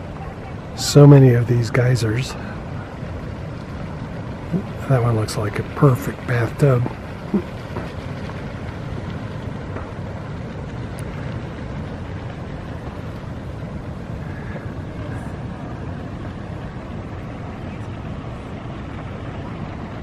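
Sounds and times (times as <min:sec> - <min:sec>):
wind rumbling on microphone: 0:00.0 - 0:20.0.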